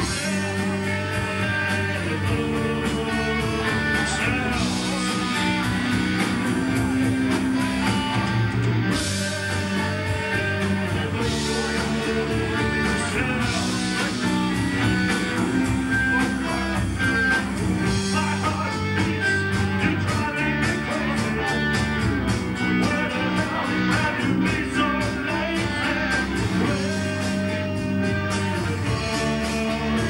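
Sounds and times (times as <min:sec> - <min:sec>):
live rock band playing: 0:00.0 - 0:30.0
person singing: 0:00.0 - 0:30.0.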